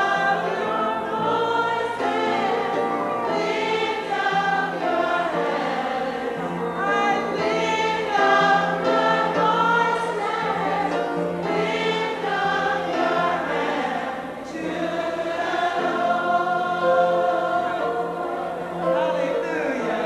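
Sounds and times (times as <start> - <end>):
women singing gospel song: 0.0 - 20.0.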